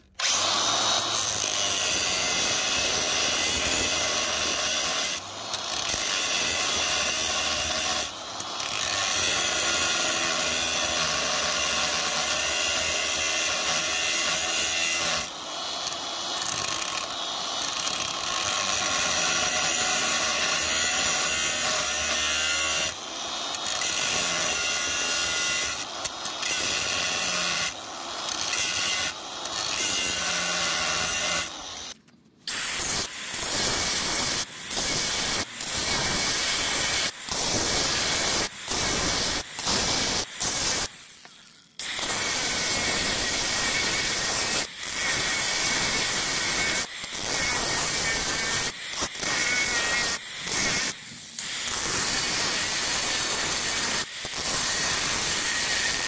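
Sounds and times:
angle grinder cutting steel: 0.0 - 56.0.

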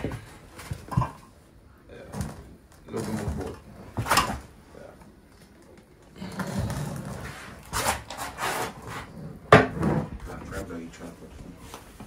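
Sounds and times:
plastic tub scraping and rubbing: 6.2 - 10.4.

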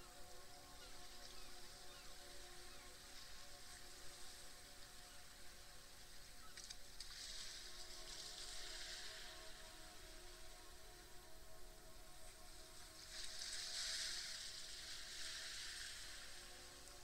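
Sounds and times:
gentle hiss: 0.0 - 17.0
soft ambient meditation music: 0.0 - 17.0
small crackles: 6.5 - 9.0.

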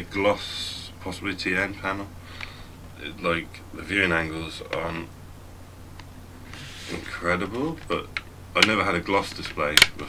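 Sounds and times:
low steady hum: 0.0 - 10.0
soft breath hiss: 0.0 - 10.0.

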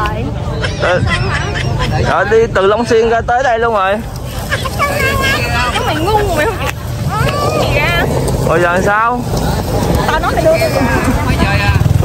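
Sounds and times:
people talking: 0.0 - 12.0
steady low rumble: 0.2 - 12.0.

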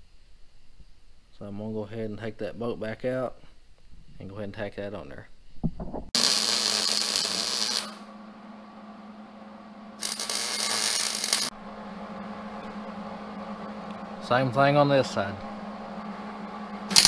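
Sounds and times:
mig welder crackling hiss: 6.2 - 8.1, 10.0 - 11.5.

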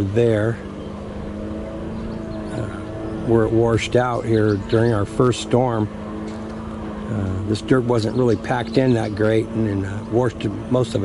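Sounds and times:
small motor humming: 0.0 - 11.0.

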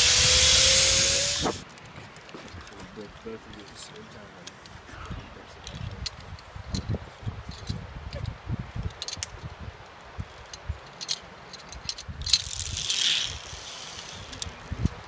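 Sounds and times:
metal harness gear clicking: 10.5 - 14.5.

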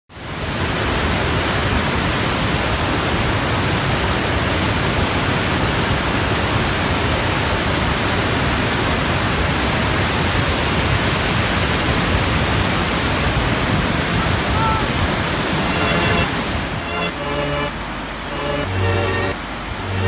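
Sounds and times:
waterfall rushing over rocks: 0.2 - 20.0.

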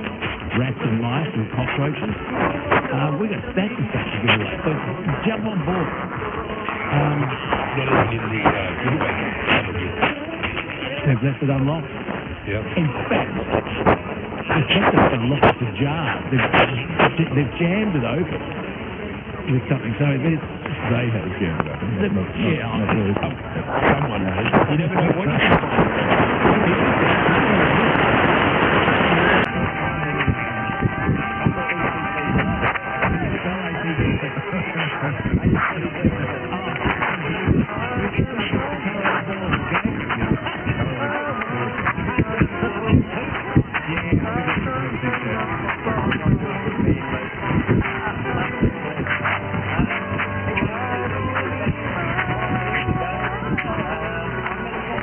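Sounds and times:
distant radio speech and music: 0.0 - 55.0
radio static: 0.0 - 55.0
steady radio whistles: 19.7 - 53.9.

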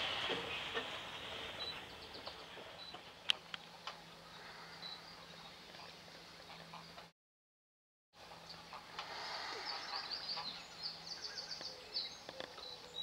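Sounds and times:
distant bird chirps: 0.2 - 7.1, 8.3 - 13.0
steady hiss: 8.2 - 11.2.

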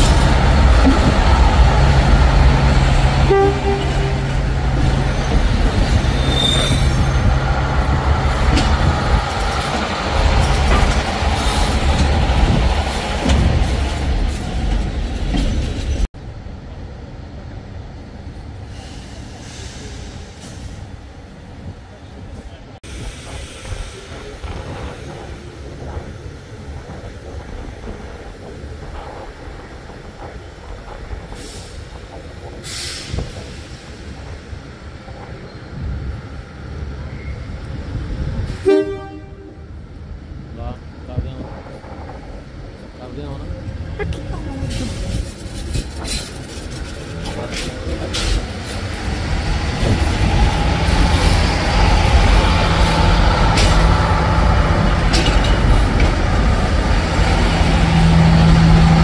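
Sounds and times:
railcar engine droning: 0.0 - 59.0
wheels rumbling on rails: 0.0 - 59.0
wheels squealing: 2.8 - 7.6.

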